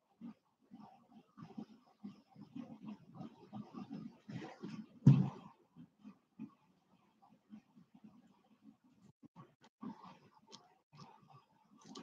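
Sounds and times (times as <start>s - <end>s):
faint soft sounds: 0.0s - 12.0s.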